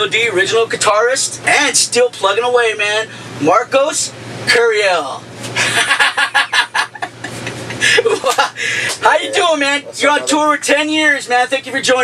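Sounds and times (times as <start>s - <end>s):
men laughing: 5.5s - 9.5s.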